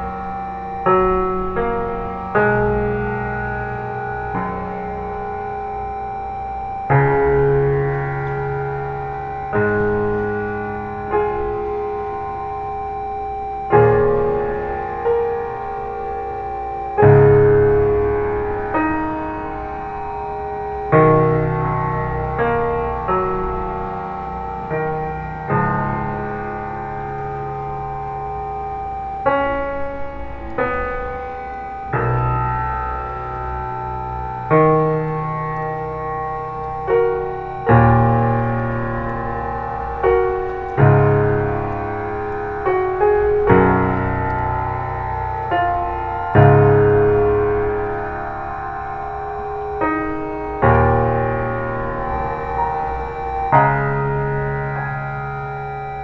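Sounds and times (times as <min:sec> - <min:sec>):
electronic keyboard chords: 0:00.0 - 0:56.0.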